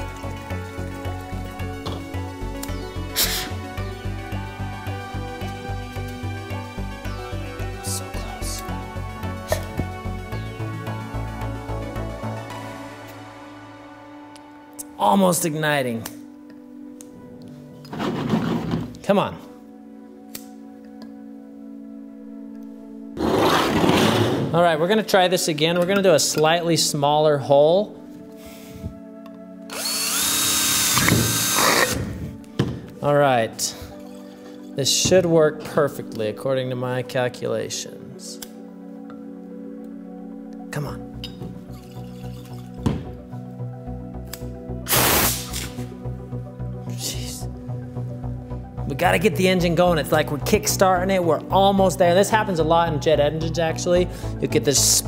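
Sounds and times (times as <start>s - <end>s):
background music: 0.0s - 55.0s
alcohol vapour puffing and sputtering: 44.9s - 45.8s
short hiss of air: 44.9s - 45.9s.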